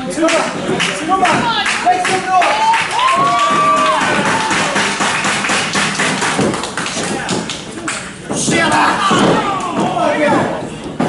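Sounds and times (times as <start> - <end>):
feet and bodies thumping on canvas: 2.8 - 5.1.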